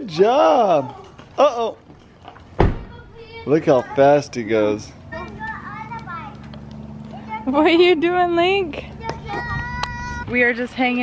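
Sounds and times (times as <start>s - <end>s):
small child babbling: 9.3s - 10.2s.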